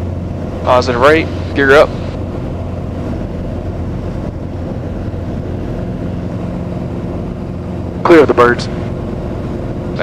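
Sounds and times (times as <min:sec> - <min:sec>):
propeller plane engine at full power: 0:00.0 - 0:10.0.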